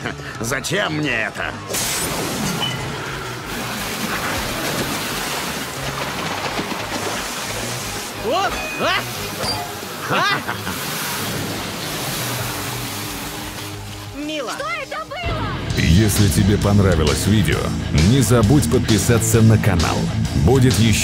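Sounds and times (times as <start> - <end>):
low score music: 0.0 - 21.0.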